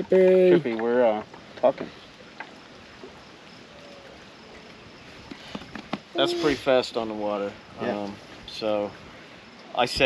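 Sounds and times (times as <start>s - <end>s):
outdoor background noise on water: 0.0s - 10.0s.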